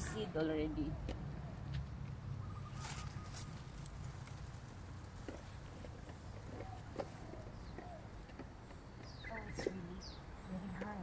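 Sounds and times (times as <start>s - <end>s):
leaves rustling and clicking: 1.7s - 10.0s.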